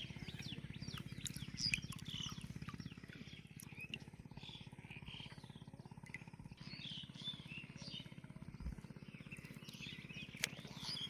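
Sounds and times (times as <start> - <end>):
low throbbing drone: 0.0 - 11.0.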